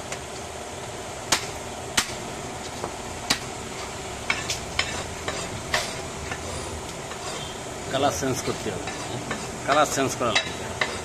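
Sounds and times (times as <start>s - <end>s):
steady hiss: 0.0s - 11.0s.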